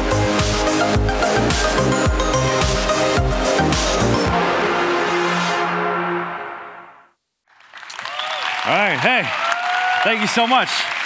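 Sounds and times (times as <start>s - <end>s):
audience applause: 7.5s - 11.0s.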